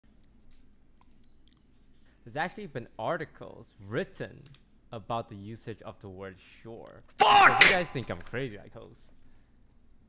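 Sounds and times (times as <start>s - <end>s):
computer mouse clicks: 0.2s - 1.7s.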